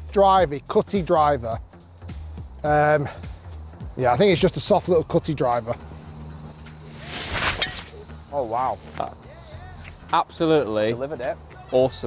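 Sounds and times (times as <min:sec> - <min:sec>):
golf club swishing: 0:06.7 - 0:09.2.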